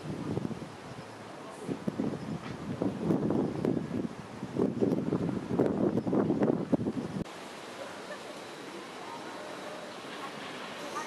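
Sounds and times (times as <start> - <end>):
wind buffeting microphone: 0.0 - 7.3.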